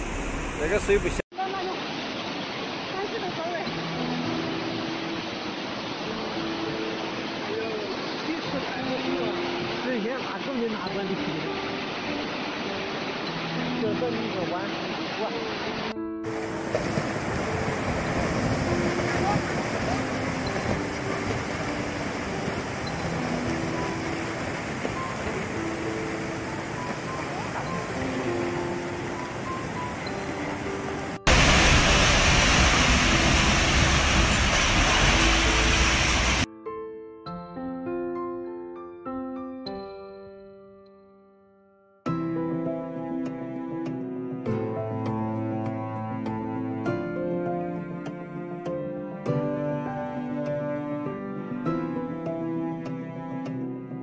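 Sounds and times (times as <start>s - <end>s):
rushing floodwater: 0.0s - 36.5s
soft melody of held notes: 18.5s - 31.2s.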